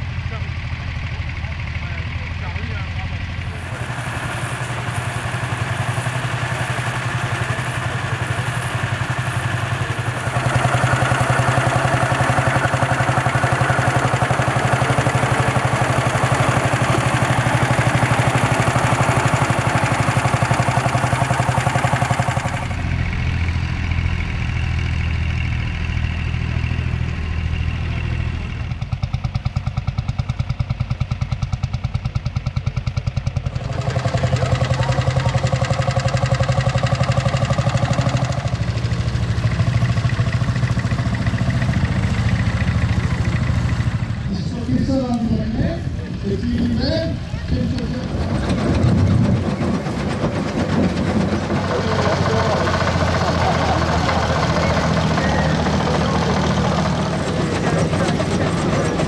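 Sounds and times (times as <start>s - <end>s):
tractor engines running under load: 0.0s - 59.0s.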